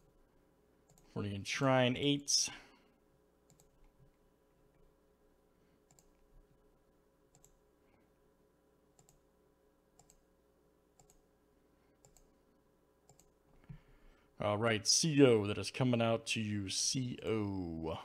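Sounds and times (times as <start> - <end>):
computer mouse clicks: 0.9 - 1.1, 3.5 - 4.2, 5.8 - 6.6, 7.3 - 7.6, 9.0 - 9.2, 10.0 - 10.2, 11.0 - 11.2, 12.0 - 12.3, 13.1 - 13.8.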